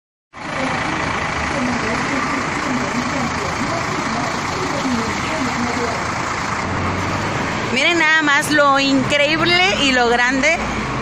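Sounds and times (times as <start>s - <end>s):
traffic noise: 0.3s - 11.0s
vehicle engine running: 0.3s - 11.0s
indistinct voices: 0.4s - 10.6s.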